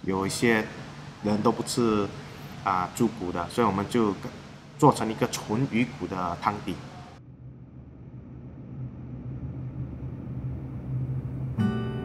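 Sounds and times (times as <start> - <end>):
low rumbling hum: 7.1 - 12.0.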